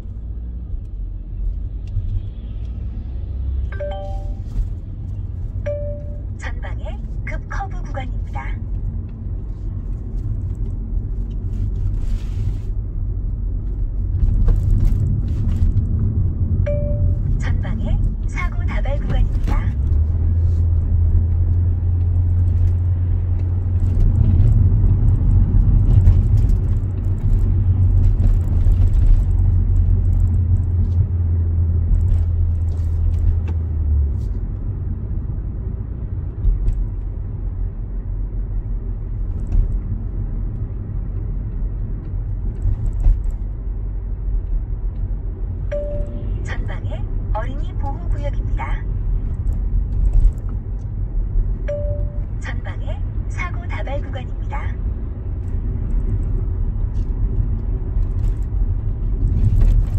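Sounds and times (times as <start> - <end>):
deep steady drone: 0.0 - 32.7, 37.0 - 59.9
car engine and road rumble: 0.0 - 59.9.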